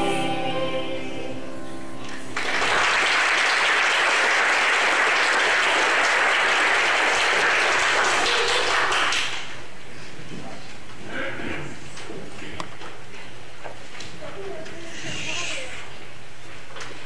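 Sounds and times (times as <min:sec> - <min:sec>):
congregation applauding: 0:02.1 - 0:09.7.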